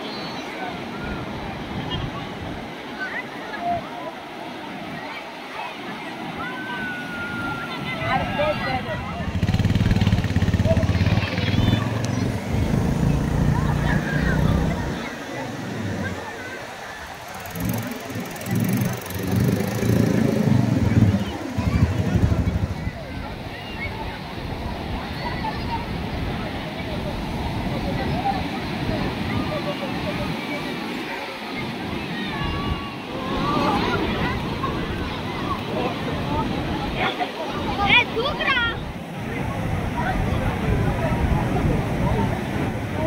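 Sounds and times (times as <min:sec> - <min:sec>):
crowd chatter: 0:00.0 - 0:43.0
quad bike engine running: 0:09.2 - 0:15.1, 0:17.3 - 0:23.0.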